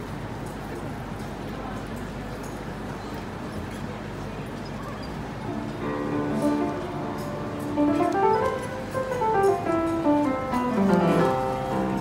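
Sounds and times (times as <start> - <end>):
piano melody: 5.5 - 12.0.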